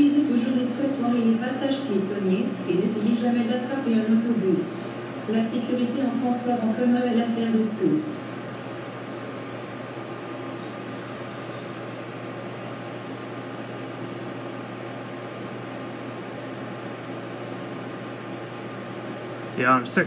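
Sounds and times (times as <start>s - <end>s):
low mechanical hum with hiss: 0.0s - 20.0s.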